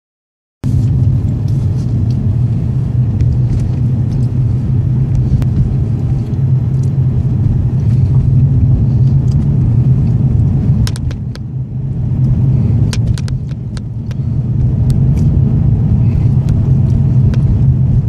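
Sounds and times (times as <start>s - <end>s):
car engine and road noise: 0.6s - 18.0s.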